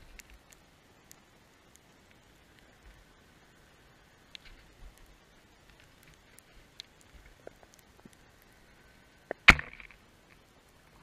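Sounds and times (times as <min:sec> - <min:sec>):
sharp knocks underwater: 0:09.3 - 0:10.0.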